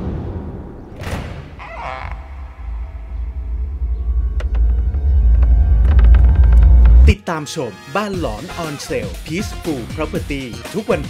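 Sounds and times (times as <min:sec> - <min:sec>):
deep rumble: 0:00.0 - 0:07.2.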